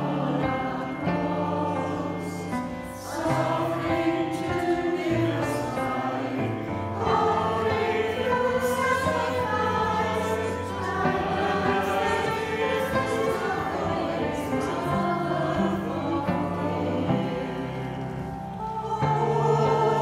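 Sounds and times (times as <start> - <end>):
mixed choir singing: 0.0 - 20.0.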